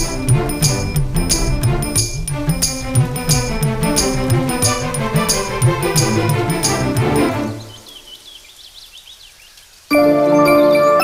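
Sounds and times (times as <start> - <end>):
mallet percussion music: 0.0 - 7.7.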